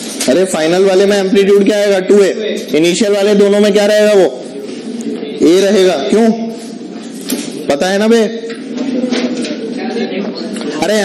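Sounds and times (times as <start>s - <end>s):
quiet voices: 0.0s - 11.0s.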